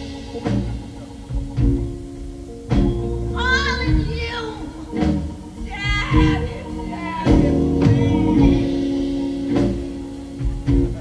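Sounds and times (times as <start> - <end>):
bass: 0.0 - 11.0
keyboard: 0.0 - 11.0
drum hits: 0.2 - 3.2
woman singing: 3.4 - 5.0, 5.6 - 8.8.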